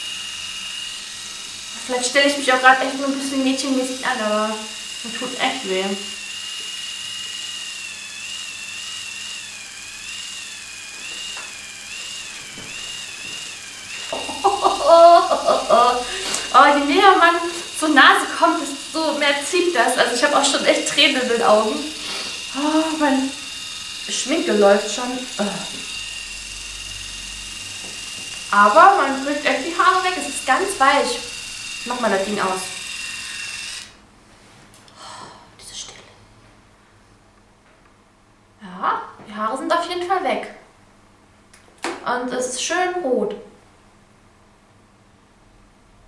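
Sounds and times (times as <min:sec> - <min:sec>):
epilator high whine: 0:00.0 - 0:34.0
woman speaking: 0:01.8 - 0:06.1, 0:14.2 - 0:21.9, 0:22.5 - 0:23.4, 0:24.1 - 0:25.8, 0:28.5 - 0:31.2, 0:31.9 - 0:32.8, 0:38.6 - 0:40.6, 0:42.0 - 0:43.5.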